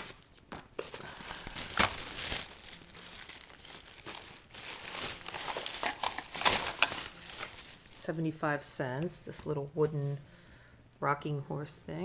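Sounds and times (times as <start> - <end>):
plastic bag rustling: 0.0 - 8.4.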